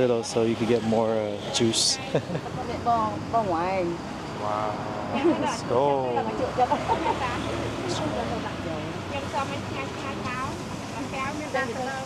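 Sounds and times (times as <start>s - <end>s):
people talking: 0.0s - 12.0s
street noise hum: 0.0s - 12.0s.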